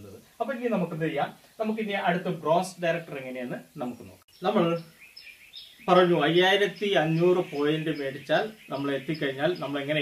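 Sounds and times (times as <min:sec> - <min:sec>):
man speaking: 0:00.0 - 0:04.9, 0:05.9 - 0:10.0
small birds chirping faintly: 0:00.0 - 0:10.0.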